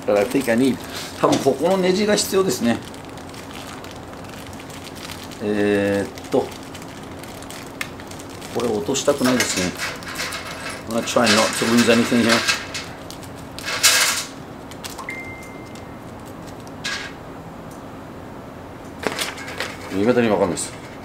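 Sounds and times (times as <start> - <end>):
plastic bag crinkling: 0.2 - 16.9, 19.0 - 20.1.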